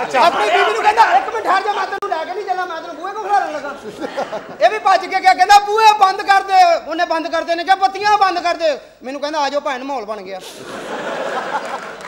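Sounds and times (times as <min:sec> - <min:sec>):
several voices talking: 0:00.0 - 0:08.8.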